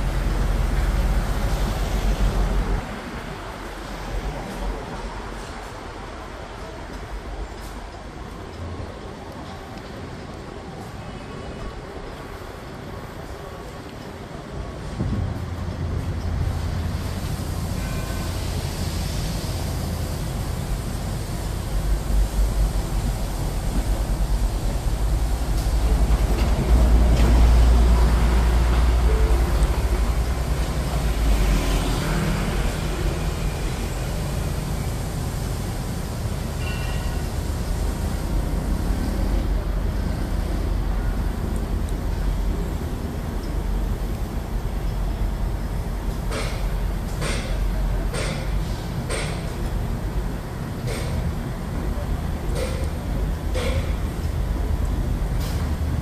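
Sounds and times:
heavy machinery engines rumbling: 0:00.0 - 0:56.0.

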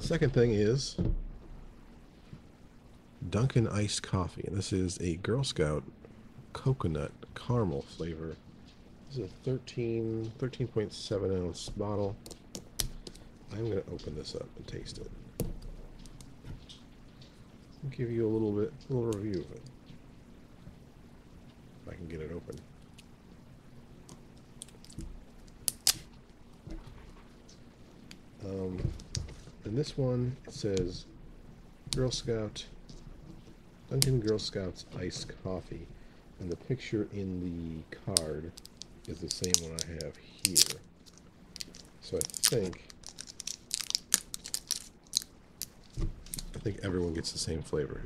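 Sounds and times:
plastic bottle crinkling: 0:38.5 - 0:46.6.

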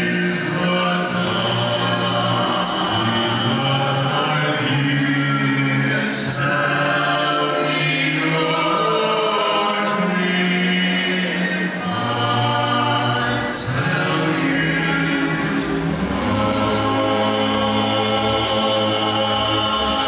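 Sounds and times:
male vocal quartet singing: 0:00.0 - 0:20.0.

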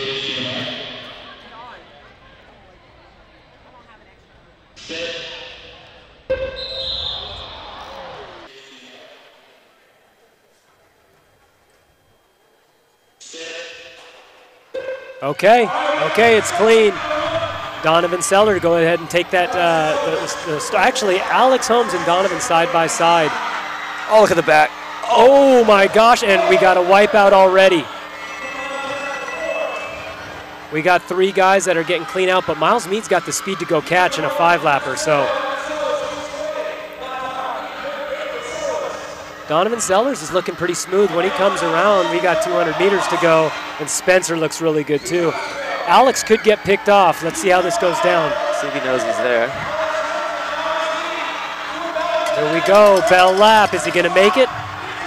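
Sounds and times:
hall background noise: 0:00.0 - 0:06.6, 0:07.3 - 0:55.0.

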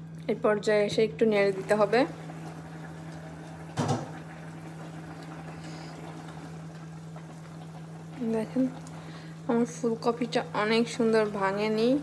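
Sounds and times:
pot of curry simmering: 0:01.4 - 0:12.0.

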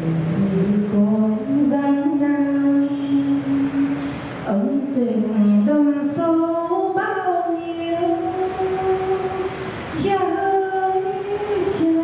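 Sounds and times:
person singing slow song: 0:00.0 - 0:12.0.

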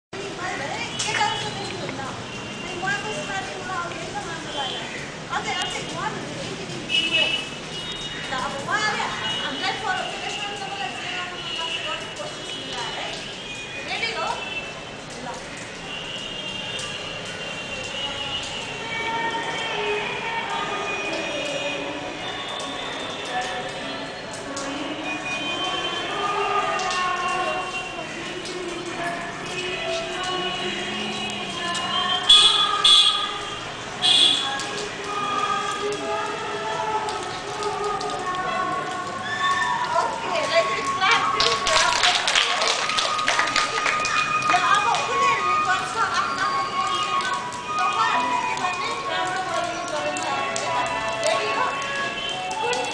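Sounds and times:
children chattering: 0:19.0 - 0:33.6, 0:34.5 - 0:42.7, 0:43.4 - 0:52.9
girls talking and calling out: 0:34.5 - 0:42.3, 0:43.5 - 0:52.9.

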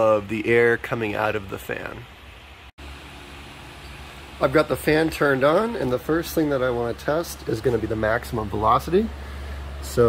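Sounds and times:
exhaust fan running: 0:00.0 - 0:10.0.

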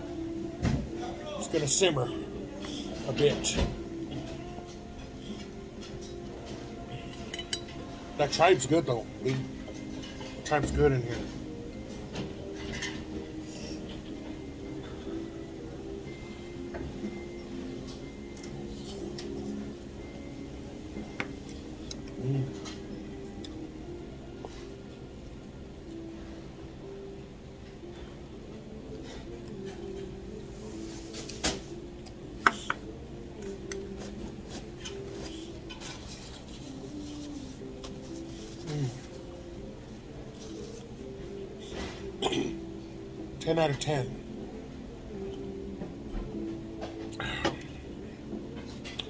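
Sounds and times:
soft background music: 0:00.0 - 0:49.0
chopsticks and bowls clinking: 0:04.2 - 0:10.5.

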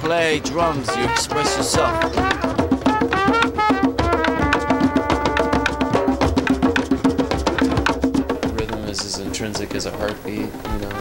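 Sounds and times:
fast hand drumming: 0:00.0 - 0:11.0.

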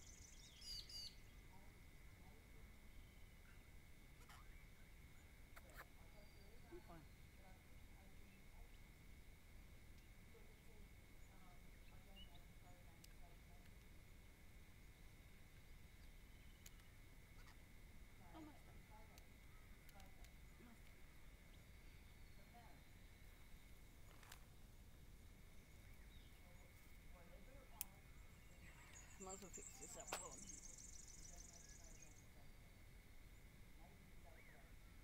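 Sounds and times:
soft clicks: 0:16.0 - 0:16.9, 0:19.1 - 0:21.0.

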